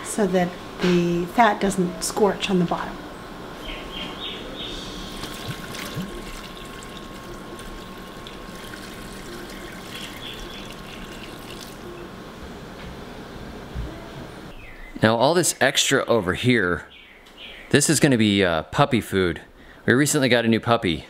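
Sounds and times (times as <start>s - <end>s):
water pouring into a pot: 5.1s - 11.9s.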